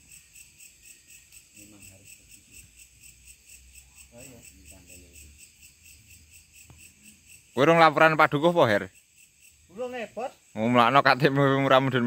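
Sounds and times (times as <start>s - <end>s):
crickets chirping: 0.0s - 12.0s
man talking: 7.6s - 8.9s, 9.7s - 12.0s.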